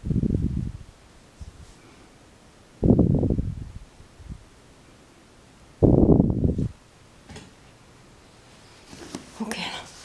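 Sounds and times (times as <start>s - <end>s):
person whispering: 9.4s - 10.0s.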